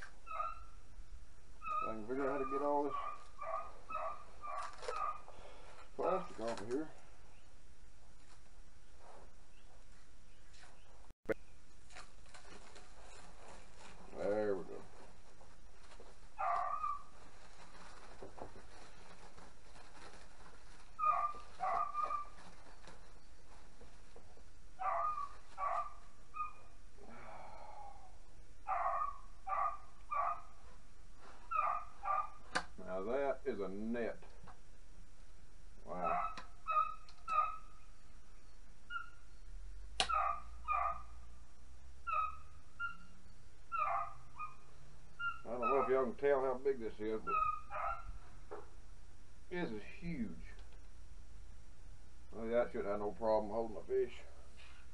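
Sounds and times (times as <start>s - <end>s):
dogs barking: 0.3s - 0.8s, 1.6s - 5.3s, 16.4s - 17.1s, 21.0s - 22.4s, 24.8s - 26.7s, 28.6s - 30.6s, 31.5s - 32.5s, 35.9s - 37.8s, 40.0s - 41.2s, 42.0s - 43.1s, 43.7s - 46.1s, 47.2s - 48.2s
plastic wrap crackling: 4.4s - 5.2s, 11.8s - 24.2s.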